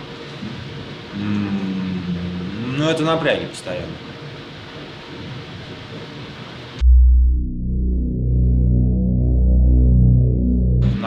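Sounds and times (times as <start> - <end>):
man humming hesitantly: 0.4 - 2.7.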